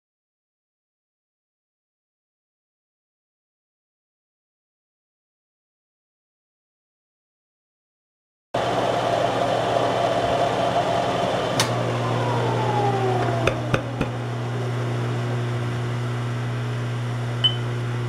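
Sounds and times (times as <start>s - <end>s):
falling whine: 8.6s - 18.0s
milling machine motor hum: 8.6s - 18.0s.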